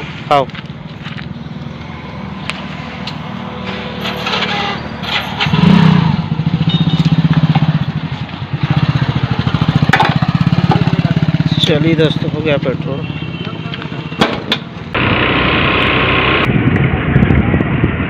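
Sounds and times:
small motorcycle engine running: 15.0s - 16.5s.

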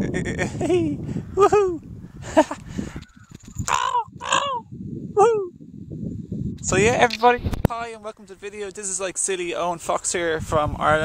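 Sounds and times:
crow cawing: 3.0s - 4.5s.

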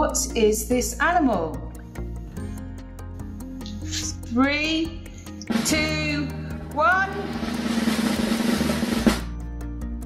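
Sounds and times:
snare drum roll: 5.5s - 6.0s, 7.0s - 9.3s.

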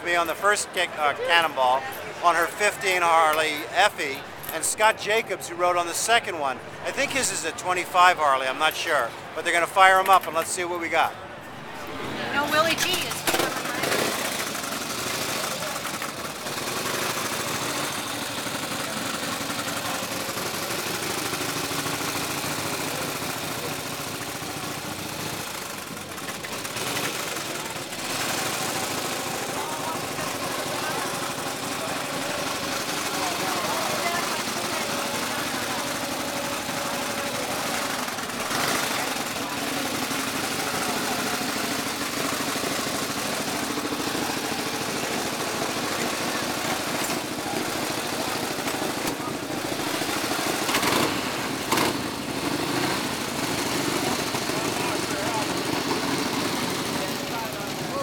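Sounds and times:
people talking: 0.0s - 14.2s, 29.2s - 41.6s, 54.0s - 58.0s
motorcycle engines idling: 10.0s - 58.0s.

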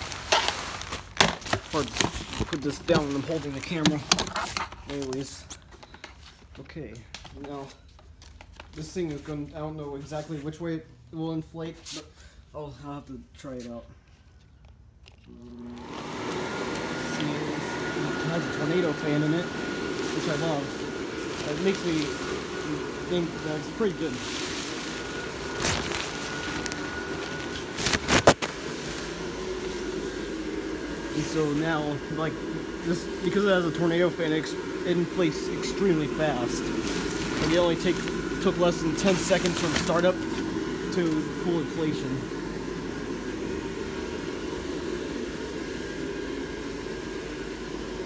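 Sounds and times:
blower fan humming: 0.0s - 14.4s, 15.0s - 48.0s.

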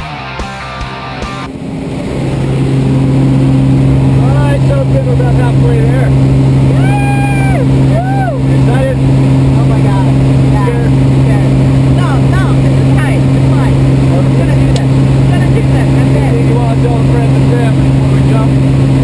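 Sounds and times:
propeller plane engine droning: 0.0s - 19.0s.

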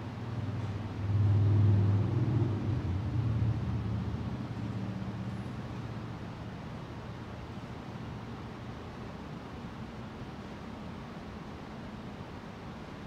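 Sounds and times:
passing vehicle engine rumble: 0.0s - 6.7s.

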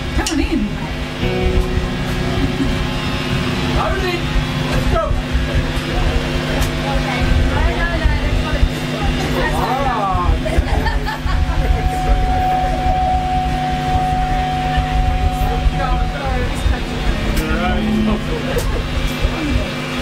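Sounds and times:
distorted bass guitar: 0.0s - 20.0s
long steady high tone: 0.0s - 20.0s.

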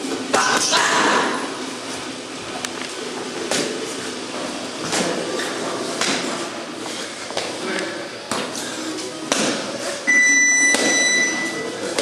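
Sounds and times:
high electronic timer beep: 10.1s - 11.7s.

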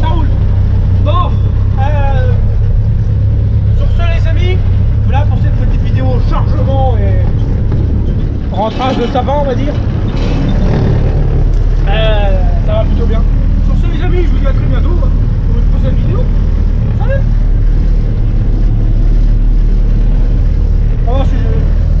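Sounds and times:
diesel truck engine droning: 0.0s - 22.0s.

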